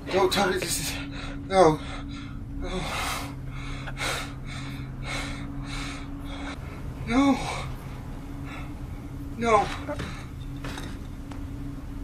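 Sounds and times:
man breathing hard: 0.8 - 9.1.

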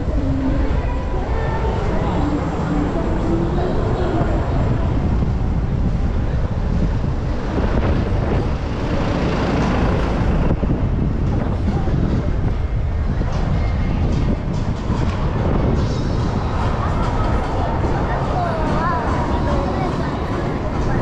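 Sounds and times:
busy city street noise: 0.0 - 21.0
faint voices of passers-by: 0.0 - 21.0
wind rumbling on microphone: 0.0 - 21.0.

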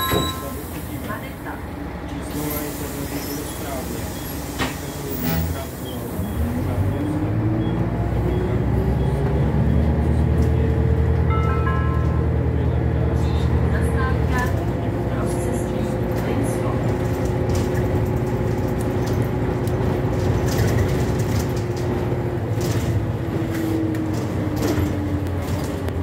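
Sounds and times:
bus diesel engine: 0.0 - 26.0.

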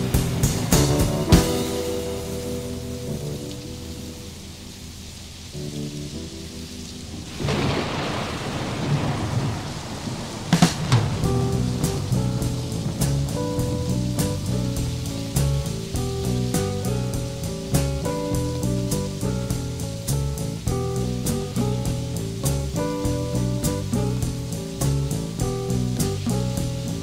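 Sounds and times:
thunderclap: 0.0 - 4.9, 6.6 - 27.0
slow rock song: 0.0 - 7.0, 10.7 - 27.0
electric piano notes: 0.0 - 8.5, 10.9 - 27.0
rain: 0.0 - 27.0.

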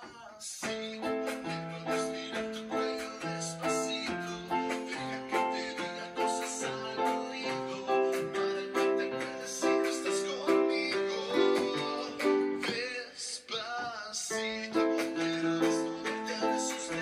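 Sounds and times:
electronic keyboard chords: 0.6 - 12.9, 14.3 - 17.0.

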